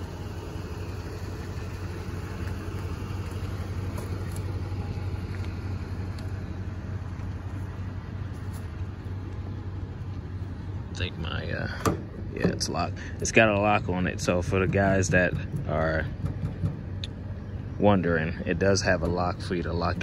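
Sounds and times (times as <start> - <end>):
engine idling: 0.0 - 20.0.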